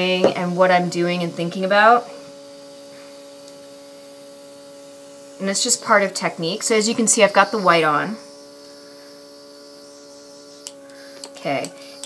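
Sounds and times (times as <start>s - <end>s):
small compressor humming: 0.0s - 12.0s.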